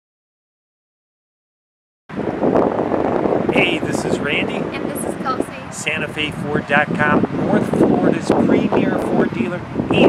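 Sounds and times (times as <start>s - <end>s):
wind rushing on microphone: 2.1s - 10.0s.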